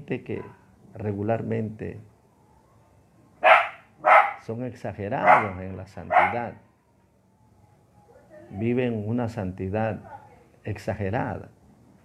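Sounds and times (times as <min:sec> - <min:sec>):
dog barking: 0:03.4 - 0:04.5, 0:05.2 - 0:06.6.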